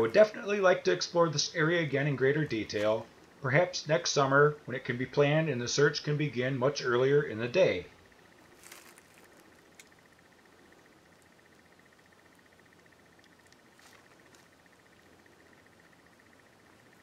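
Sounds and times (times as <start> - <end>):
faint high hum: 0.0 - 17.0
faint ticks: 8.0 - 17.0.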